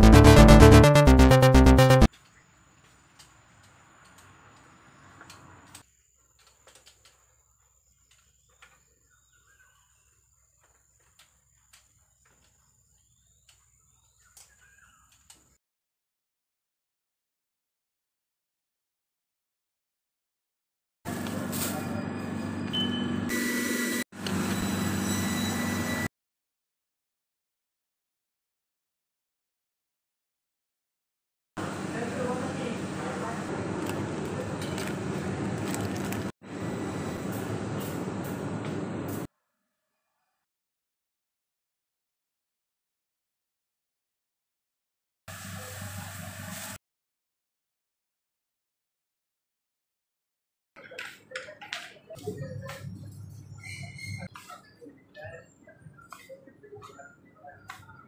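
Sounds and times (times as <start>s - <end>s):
faint bird chirps: 7.2s - 10.8s.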